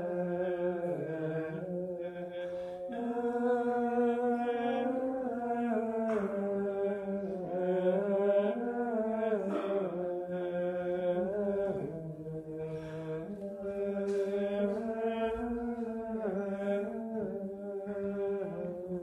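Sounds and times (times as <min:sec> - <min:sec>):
unaccompanied plainchant singing: 0:00.0 - 0:19.0.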